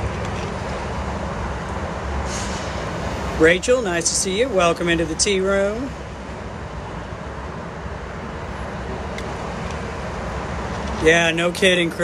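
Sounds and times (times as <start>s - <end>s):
outdoor rumble and hiss: 0.0s - 12.0s.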